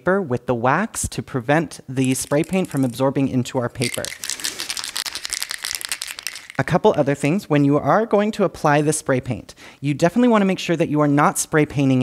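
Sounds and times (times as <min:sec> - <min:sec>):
spray can rattling when shaken: 0:02.0 - 0:06.9.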